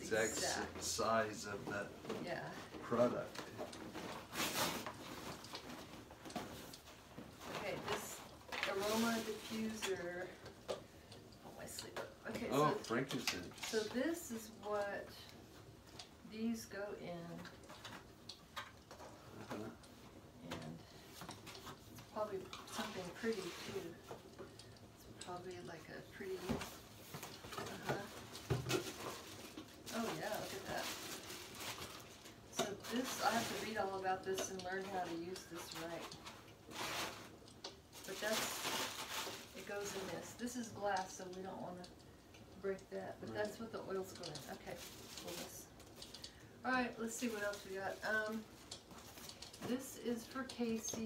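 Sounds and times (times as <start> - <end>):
foil gift bag rustling: 2.9 - 6.7, 7.3 - 10.3, 26.7 - 41.1, 44.0 - 46.1, 46.7 - 51.0.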